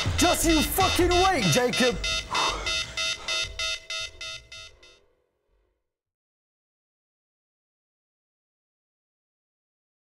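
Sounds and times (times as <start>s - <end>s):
pulsing electronic alarm tone: 0.0s - 5.0s.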